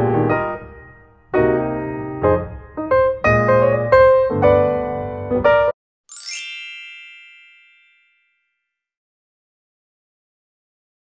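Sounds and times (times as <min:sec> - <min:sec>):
piano background music: 0:00.0 - 0:08.0
sparkling chime sound effect: 0:06.1 - 0:08.7.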